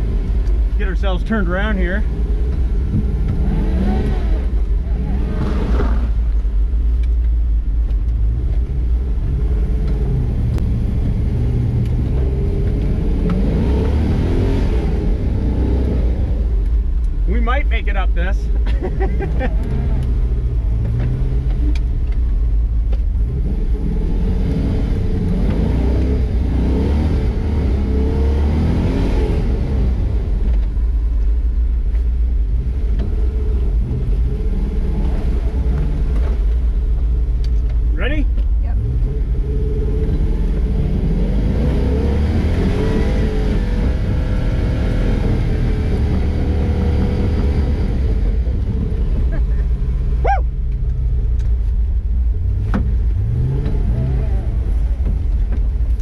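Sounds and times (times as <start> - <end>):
truck engine revving under load: 2.0 - 6.6, 8.2 - 17.2, 23.2 - 30.6, 38.7 - 55.8.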